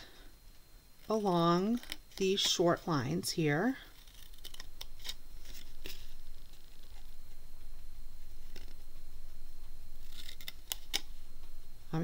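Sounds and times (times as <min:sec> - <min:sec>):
scissors snipping cardstock: 0:04.0 - 0:05.2.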